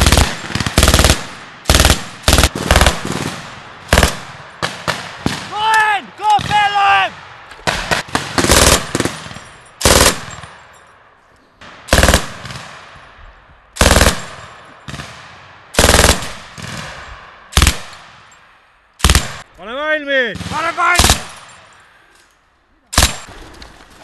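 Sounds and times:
machine gun firing bursts: 0.0s - 5.0s, 7.6s - 10.5s, 11.9s - 12.7s, 13.8s - 17.0s, 17.6s - 17.9s, 19.0s - 19.4s, 21.0s - 21.4s.

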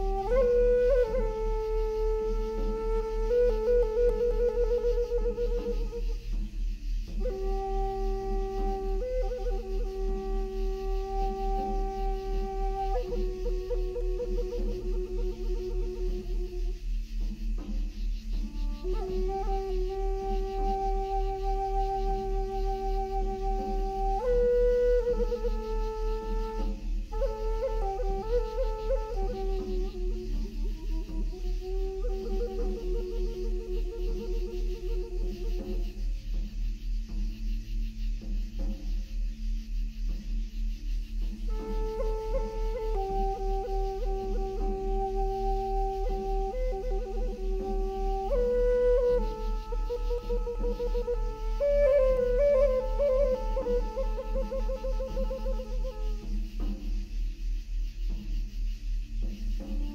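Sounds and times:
flute playing long notes: 0.0s - 37.2s, 41.2s - 57.2s, 59.6s - 59.9s.

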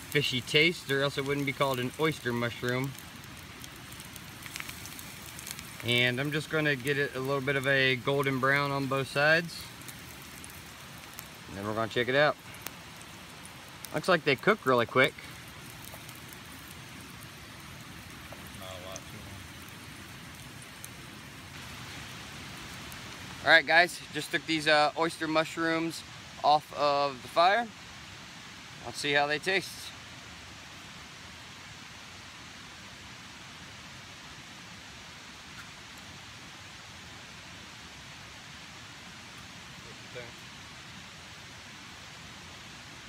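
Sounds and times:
campfire coals crackling: 0.0s - 43.0s
mushrooms sizzling in butter: 0.0s - 43.0s.

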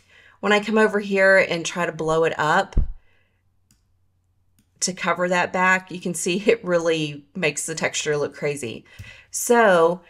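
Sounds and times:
woman speaking: 0.4s - 3.0s, 4.8s - 10.0s
computer mouse clicks: 3.6s - 3.9s.

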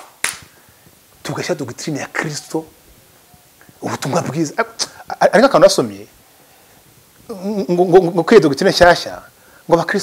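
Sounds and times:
man talking: 1.2s - 2.8s, 3.8s - 6.2s, 7.3s - 10.0s.

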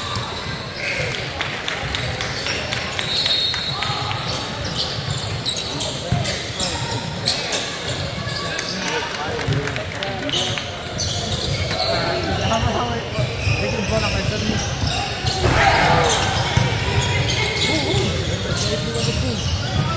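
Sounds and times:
sneakers squeaking: 0.0s - 9.1s, 10.3s - 19.9s
players calling out: 13.4s - 19.8s
basketball bouncing: 15.4s - 17.3s.

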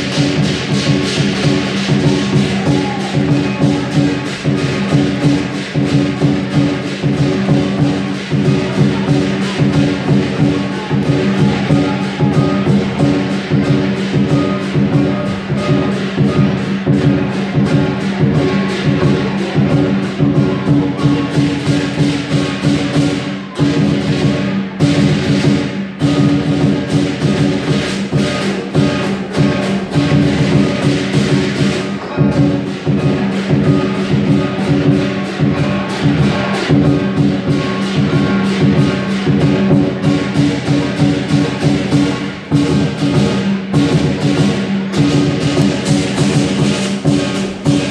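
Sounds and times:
clashing hand cymbals: 0.0s - 47.9s
drum beaten in fast rhythm: 0.0s - 47.9s.

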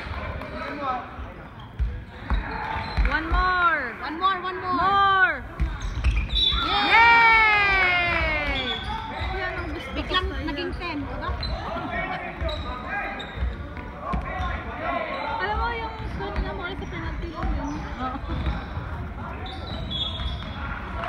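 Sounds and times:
basketball bouncing on floor: 5.6s - 6.2s.

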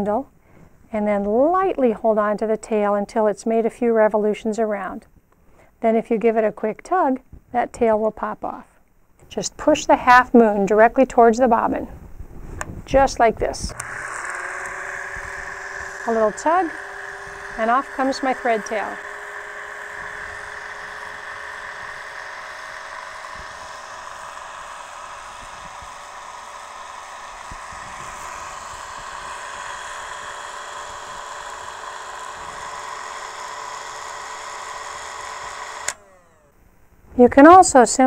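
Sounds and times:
bobbin winder motor whirring: 12.6s - 36.6s.

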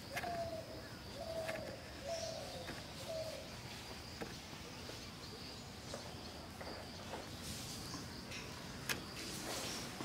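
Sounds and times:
dove cooing: 0.0s - 3.4s.

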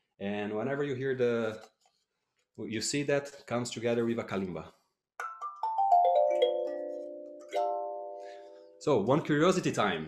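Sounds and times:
kalimba tines plucked: 5.2s - 8.4s.

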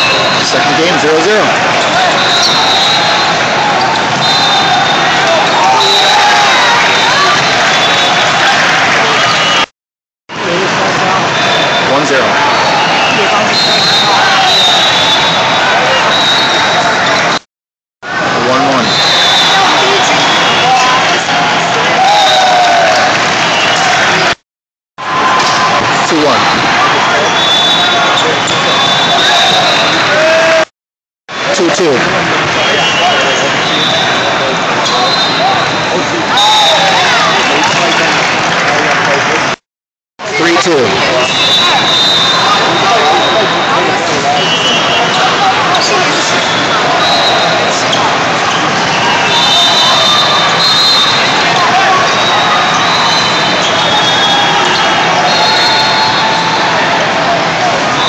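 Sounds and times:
voices calling and chattering: 0.0s - 9.7s, 10.3s - 17.4s, 18.1s - 24.4s, 25.1s - 30.7s, 31.3s - 39.6s, 40.2s - 58.0s.

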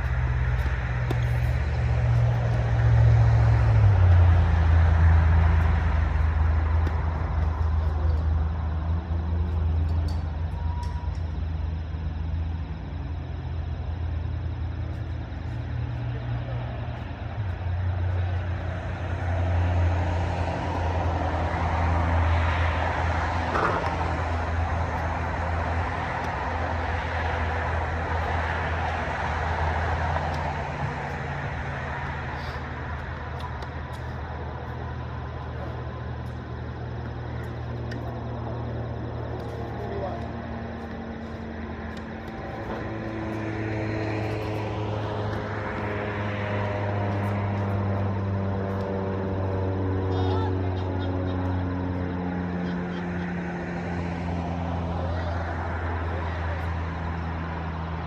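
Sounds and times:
traffic rumble: 0.0s - 58.0s.

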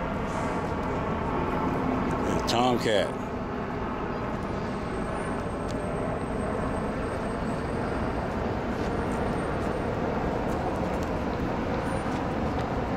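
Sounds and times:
steady rumbling background noise: 0.0s - 12.9s.

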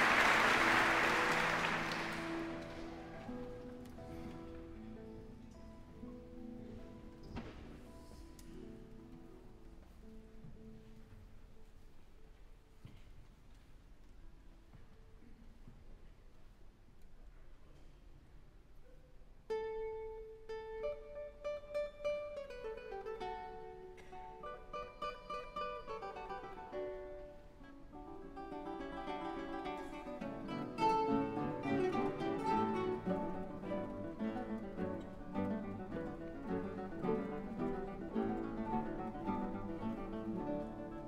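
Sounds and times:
classical guitars playing: 0.0s - 12.3s, 19.5s - 41.0s.

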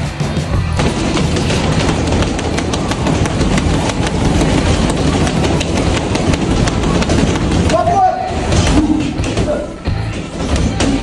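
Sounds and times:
boxing gloves punching heavy bags: 0.5s - 11.0s.

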